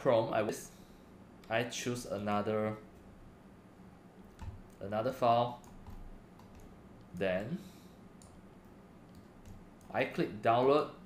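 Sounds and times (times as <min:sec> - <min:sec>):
computer mouse clicks: 0:05.6 - 0:07.5, 0:08.2 - 0:10.0.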